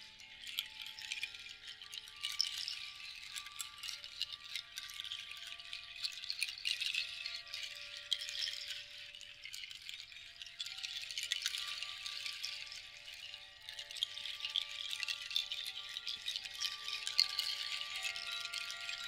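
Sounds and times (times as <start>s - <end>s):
faint ringing chimes: 0.0s - 19.0s
strand rattle shaken: 0.0s - 19.0s.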